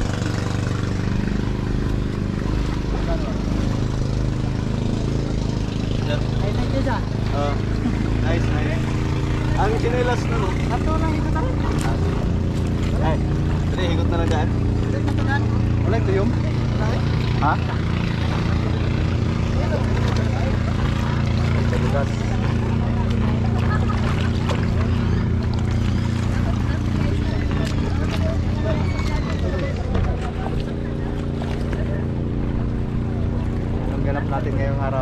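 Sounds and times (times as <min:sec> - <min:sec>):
boat engine droning: 0:00.0 - 0:35.0
chatter of voices: 0:00.0 - 0:35.0.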